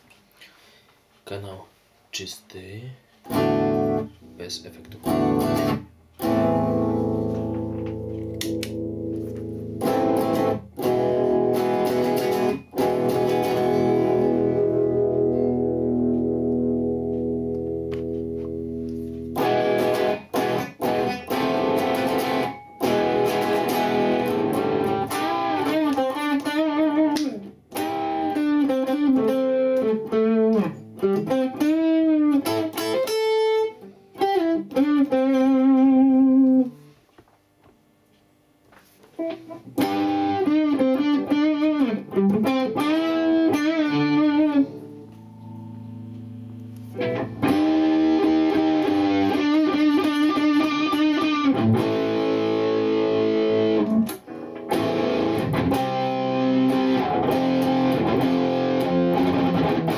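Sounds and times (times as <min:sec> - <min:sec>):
distorted electric guitar lead: 0:03.2 - 0:36.9, 0:39.2 - 0:59.9
clean electric guitar chords: 0:03.3 - 0:36.9, 0:39.2 - 0:59.9.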